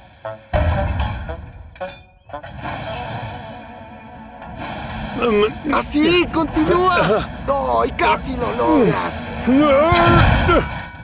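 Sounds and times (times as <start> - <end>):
steam hissing: 0.0 - 0.6, 2.5 - 10.8
background music: 0.0 - 11.0
loud burst with deep rumble: 2.6 - 10.7.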